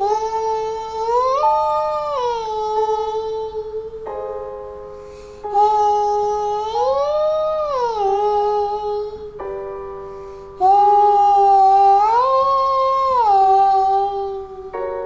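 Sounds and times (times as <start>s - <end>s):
child singing vocal slides: 0.0s - 4.4s, 5.2s - 9.6s, 10.4s - 15.0s
keyboard chord: 0.0s - 15.0s.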